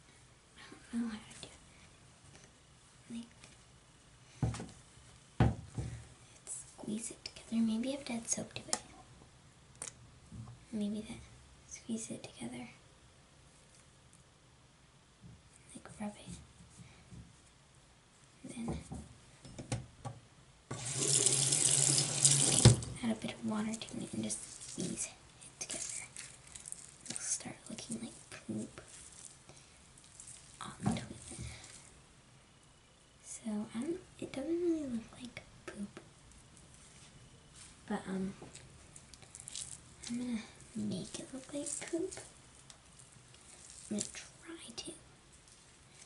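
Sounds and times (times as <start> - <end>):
water running from faucet: 20.7 - 23.0.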